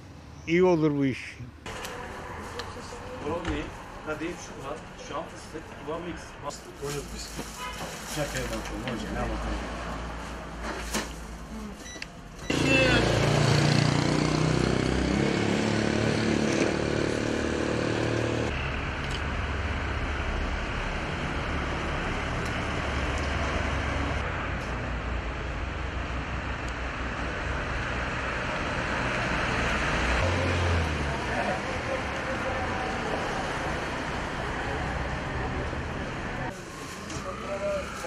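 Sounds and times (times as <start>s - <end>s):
vehicles driving past: 0.0s - 11.5s, 12.3s - 38.0s.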